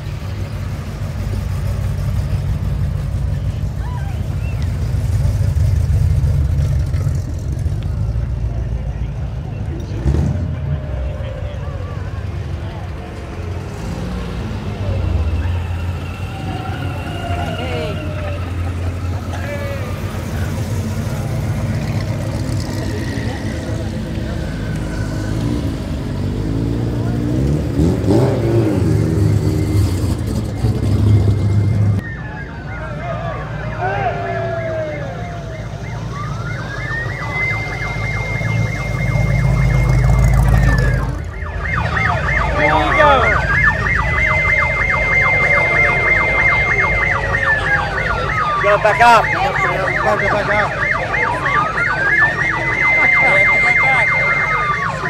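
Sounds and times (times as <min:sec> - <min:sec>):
car engines rumbling and revving: 0:00.0 - 0:55.0
police siren wailing: 0:06.4 - 0:55.0.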